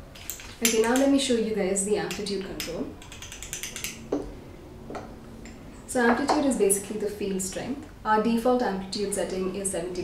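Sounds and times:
faint steady hum: 0.0 - 10.0
fast run of small clicks: 2.5 - 4.0.

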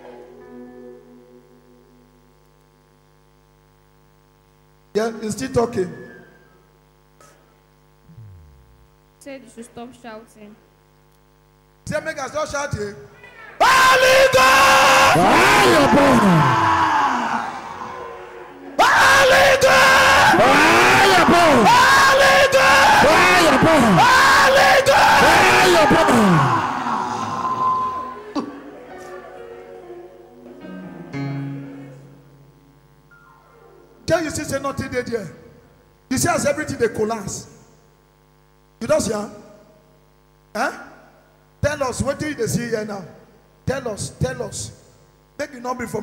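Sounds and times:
electrical mains hum: 0.0 - 46.0
steady tone: 8.0 - 9.3
person wailing: 8.1 - 8.9, 15.1 - 17.1, 18.8 - 27.5
spoken word echoing: 8.1 - 9.0.

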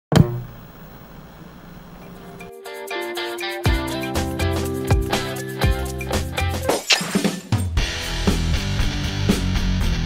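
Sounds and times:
quiet low hum: 0.4 - 2.5.

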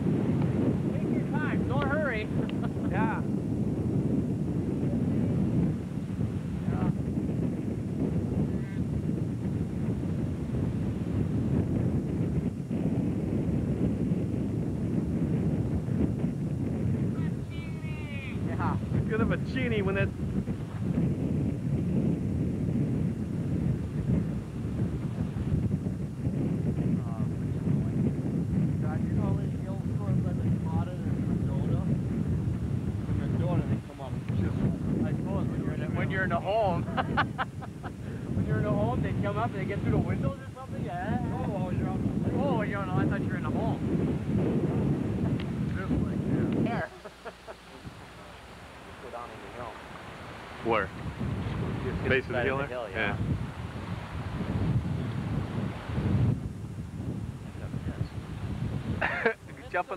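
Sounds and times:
gusty wind buffeting microphone: 0.0 - 59.9.

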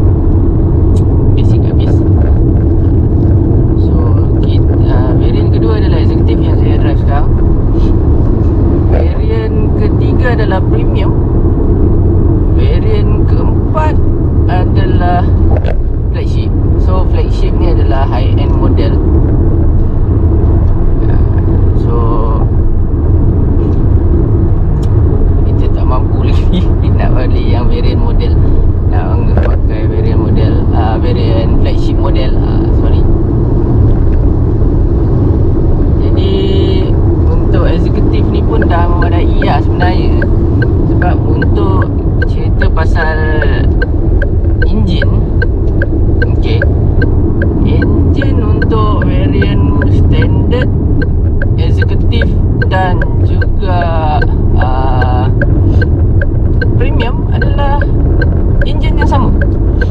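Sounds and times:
road and engine rumble in car: 0.0 - 59.9
person talking: 1.0 - 2.8, 3.6 - 7.9, 8.9 - 11.2, 12.5 - 19.0, 21.0 - 22.5, 24.8 - 33.1, 36.0 - 43.9, 44.6 - 46.8, 47.4 - 50.8, 51.4 - 55.9, 56.6 - 59.9.

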